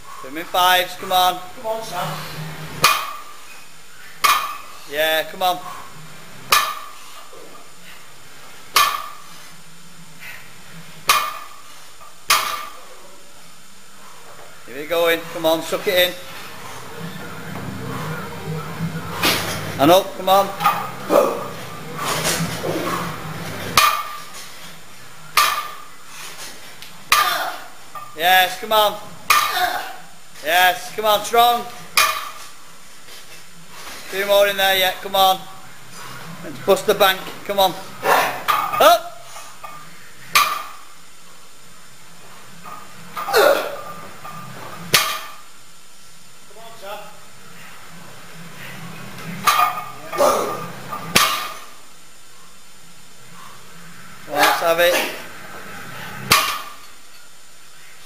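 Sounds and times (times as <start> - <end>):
steady low hiss: 0.0 - 58.0.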